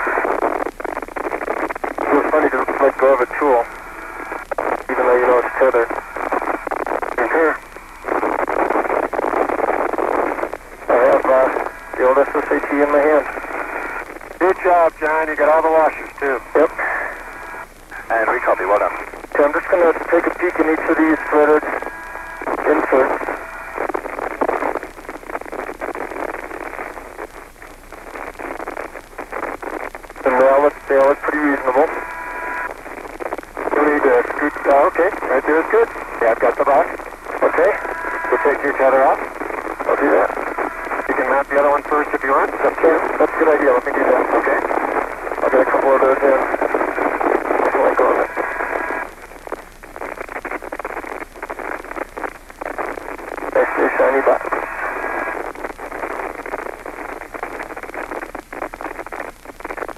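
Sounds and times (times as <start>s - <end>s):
radio hiss: 0.0s - 59.9s
voices over radio: 0.0s - 59.9s.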